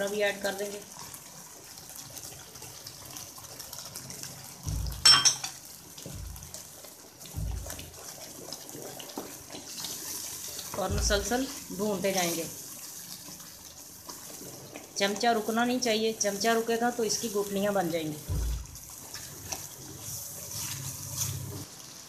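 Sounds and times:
halwa bubbling in a pan: 0.0s - 22.0s
wooden spatula stirring: 3.4s - 22.0s
dull low thuds: 4.6s - 5.0s, 7.3s - 8.0s, 18.3s - 18.8s.

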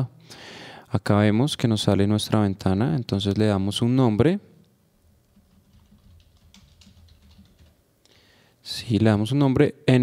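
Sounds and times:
typing on computer keyboard: 5.3s - 7.8s.

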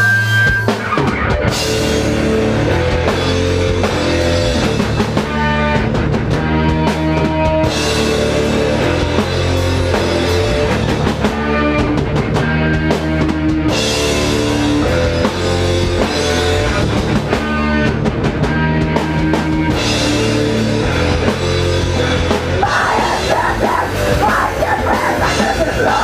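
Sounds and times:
punk band playing: 0.0s - 26.0s.

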